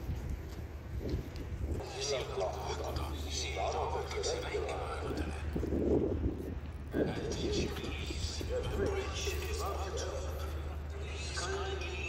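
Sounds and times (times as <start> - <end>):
steady low rumble: 0.0 - 12.0
person speaking: 1.8 - 5.6, 7.0 - 12.0.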